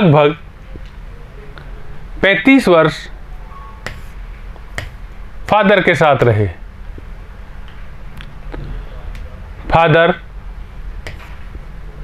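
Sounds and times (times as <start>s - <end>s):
low room hum: 0.0s - 12.0s
stylus tapping on whiteboard: 3.8s - 5.7s, 11.0s - 11.4s.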